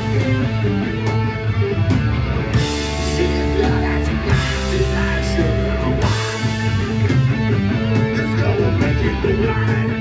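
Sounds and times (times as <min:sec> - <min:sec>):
bass guitar: 0:00.0 - 0:10.0
distorted electric guitar: 0:00.0 - 0:10.0.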